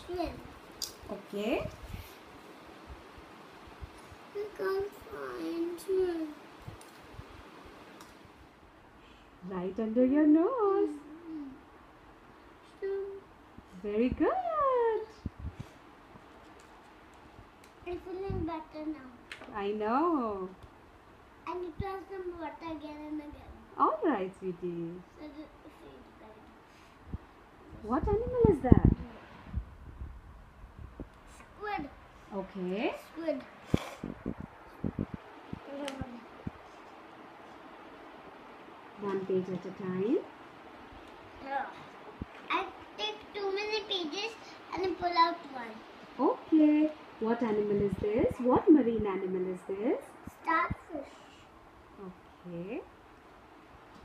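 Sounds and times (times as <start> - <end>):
faint humming voice: 9.0 - 11.8, 12.6 - 15.7, 32.3 - 37.0, 50.9 - 52.9.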